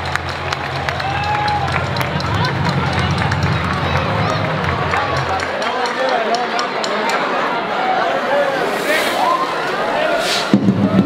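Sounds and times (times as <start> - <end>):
low hum: 0.0 - 5.6
crowd voices and shouts: 0.0 - 11.0
firework fountains hissing: 8.5 - 10.8.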